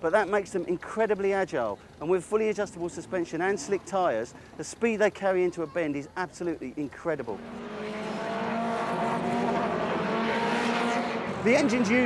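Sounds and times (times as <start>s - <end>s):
race car engine running: 0.0s - 5.2s, 6.2s - 12.0s.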